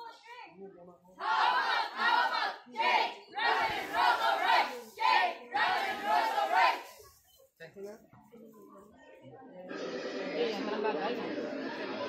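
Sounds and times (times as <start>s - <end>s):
group shouting a cheer chant: 1.2s - 6.9s.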